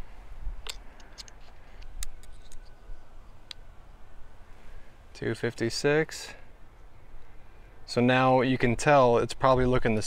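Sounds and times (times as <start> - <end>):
small sharp plastic clicks: 0.6 - 2.8.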